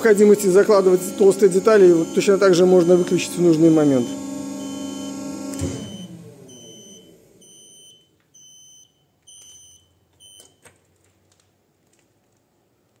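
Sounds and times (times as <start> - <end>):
hydraulic pump motor humming: 0.0 - 7.4.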